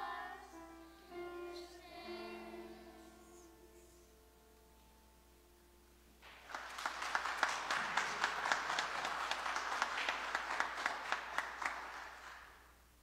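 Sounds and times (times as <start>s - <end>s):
music: 0.0s - 6.6s
congregation clapping: 6.2s - 12.8s.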